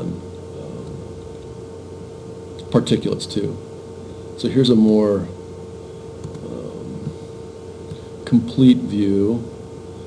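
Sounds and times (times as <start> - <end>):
mechanical hum: 0.0 - 10.0.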